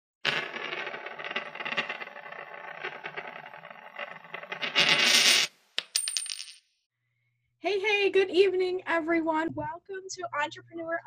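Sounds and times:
coin spinning and rattling: 0.2 - 6.6
coin clicks: 0.3 - 6.6.

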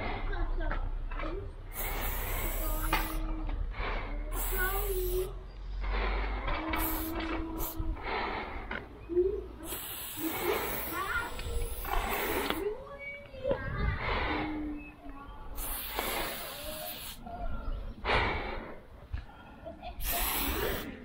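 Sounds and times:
spray-paint can hissing: 1.7 - 3.3, 4.3 - 5.3, 6.7 - 7.8, 9.6 - 12.6, 15.6 - 17.2, 20.0 - 21.0.

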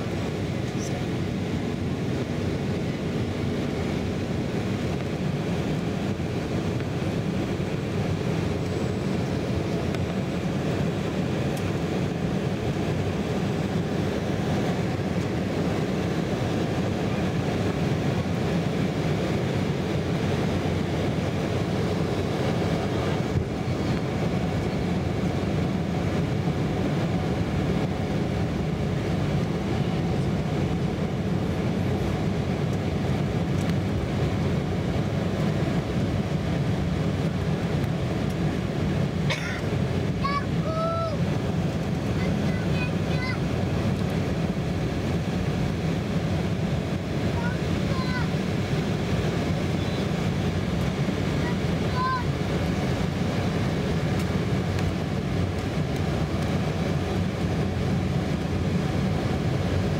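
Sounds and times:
jet cabin engine rumble: 0.0 - 59.9.

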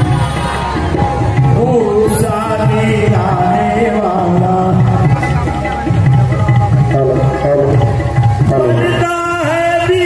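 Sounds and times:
drumming: 0.0 - 10.0.

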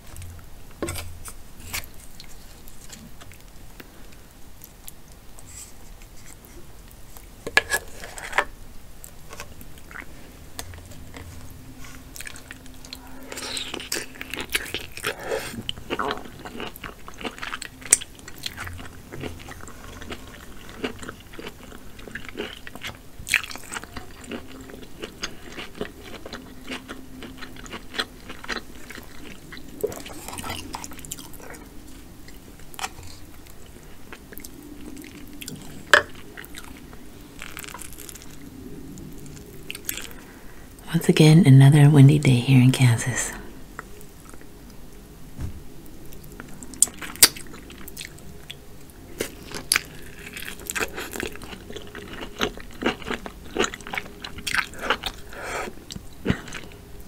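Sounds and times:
chewing and biting crab meat: 9.4 - 40.2, 46.2 - 57.0.

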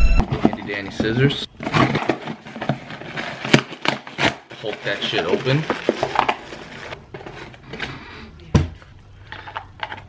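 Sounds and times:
cardboard scraping and rustling: 0.2 - 7.9.

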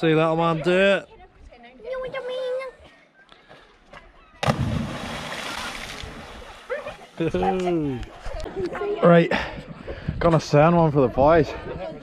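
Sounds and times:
loud splash into water: 4.4 - 6.6.

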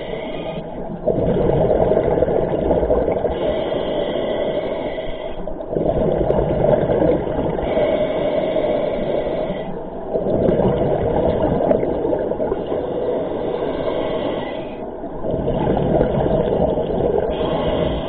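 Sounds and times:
regulator inhale hiss: 0.0 - 0.8, 3.3 - 5.6, 7.6 - 9.8, 12.6 - 14.9, 17.3 - 18.0
exhaled bubbles rushing: 0.8 - 3.5, 5.7 - 7.8, 10.1 - 13.2, 15.2 - 18.0.

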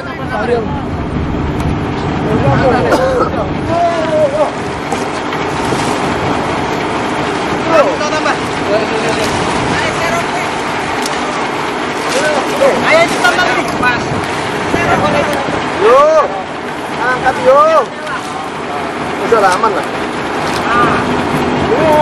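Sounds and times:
ship engine running: 0.0 - 22.0
wind: 0.0 - 22.0
men shouting: 2.4 - 4.8, 7.5 - 17.9, 20.6 - 22.0.

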